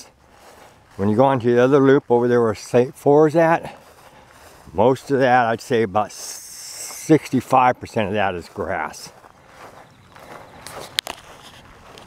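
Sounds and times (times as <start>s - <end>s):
footsteps in mown grass: 0.0s - 12.0s.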